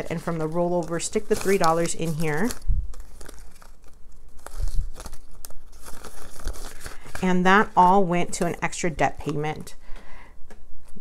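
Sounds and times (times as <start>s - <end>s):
paper bills and plastic rustling: 0.0s - 9.7s.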